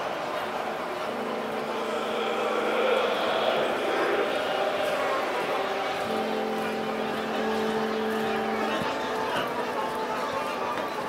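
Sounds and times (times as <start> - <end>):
downtempo electronic music: 0.0 - 11.0.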